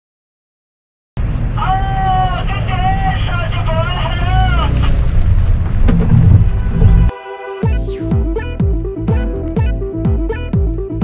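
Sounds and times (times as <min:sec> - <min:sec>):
wind rumble on microphone: 0:04.7 - 0:07.1.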